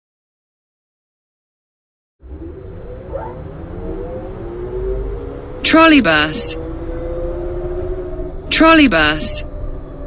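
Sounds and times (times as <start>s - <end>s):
motor whine rising in pitch: 2.2s - 10.0s
trolleybus low rumble: 2.2s - 10.0s.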